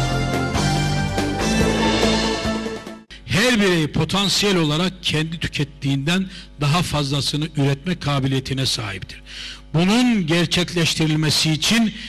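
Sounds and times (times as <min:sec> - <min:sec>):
instrumental music with held notes: 0:00.0 - 0:03.1.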